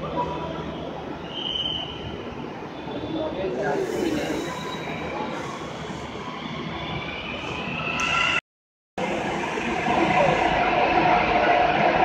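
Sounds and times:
metro train rumbling: 1.9 - 7.8, 9.0 - 12.0
train wheel squeal: 2.9 - 8.4.

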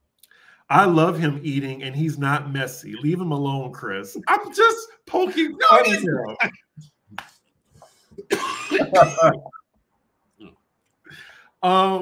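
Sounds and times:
man saying um: 0.7 - 6.5, 8.7 - 9.4
man coughing: 8.2 - 9.4.

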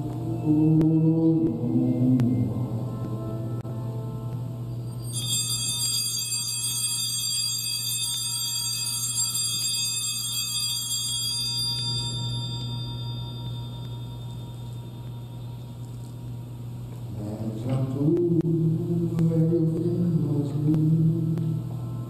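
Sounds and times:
low steady hum: 0.0 - 22.0
small bells shaken ringing: 4.9 - 16.2.

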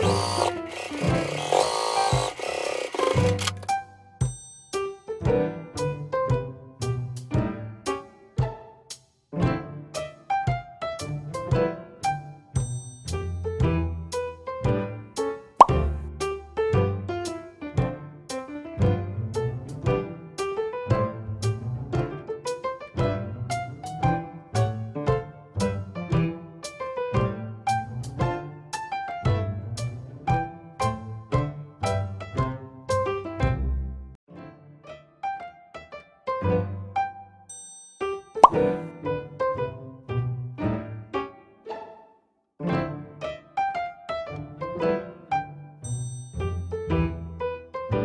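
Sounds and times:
light plucked background music: 0.0 - 4.0, 15.6 - 18.0
cartoon pop sound effect: 15.6 - 16.0, 38.4 - 38.8
rising plop sound effect: 38.4 - 38.7
cheerful keyboard music: 38.4 - 48.0.

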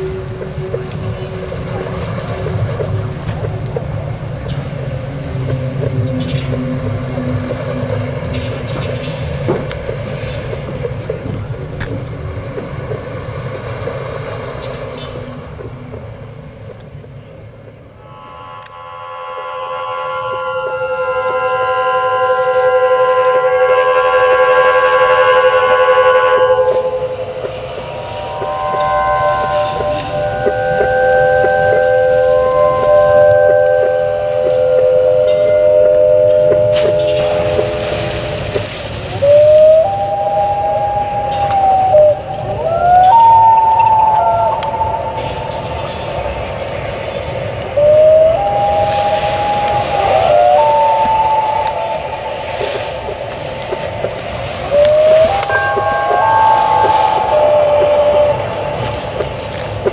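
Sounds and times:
gliding tones: 0.0 - 59.9
low hiss: 0.0 - 59.9
steady pitched tones: 0.0 - 59.9.

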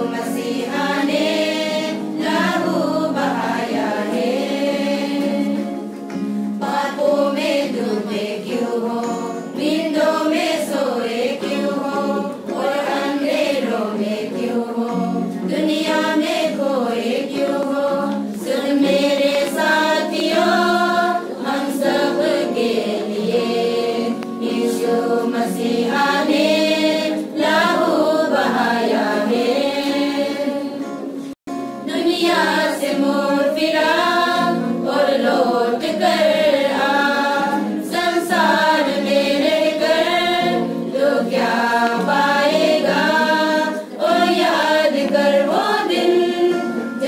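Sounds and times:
women's choir singing a hymn: 0.0 - 47.0.

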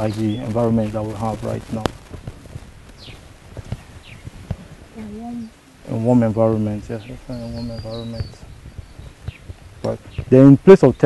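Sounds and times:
falling bird chirps: 0.0 - 2.1, 2.8 - 5.0, 6.3 - 11.0
woman speaking a word: 5.0 - 5.5.

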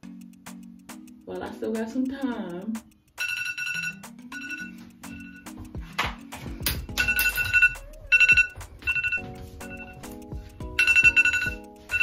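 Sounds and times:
phone alarm ringtone: 3.2 - 5.6, 6.9 - 10.1, 10.7 - 12.0.

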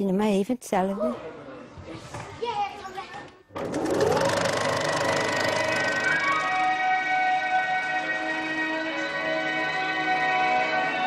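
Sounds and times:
film projector clattering: 3.6 - 6.3.

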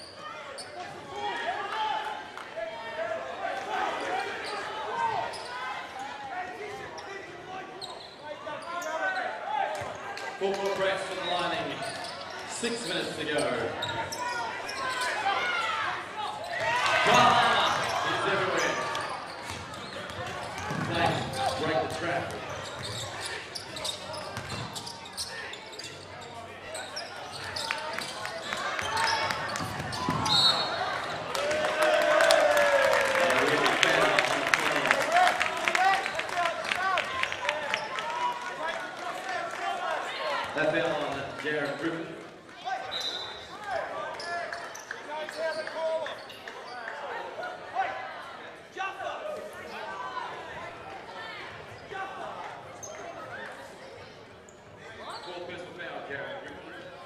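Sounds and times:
players and spectators voices: 0.0 - 57.0.

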